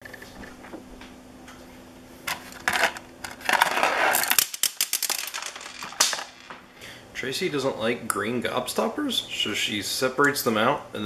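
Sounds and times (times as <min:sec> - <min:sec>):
hard candies rattling in plastic bag: 0:02.5 - 0:06.5.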